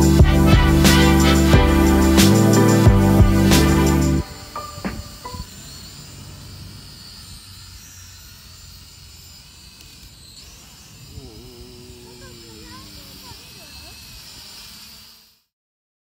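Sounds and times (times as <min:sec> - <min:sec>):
music track: 0:00.0 - 0:05.5
quadcopter propellers whining: 0:00.0 - 0:15.5
steady hiss: 0:02.0 - 0:15.5.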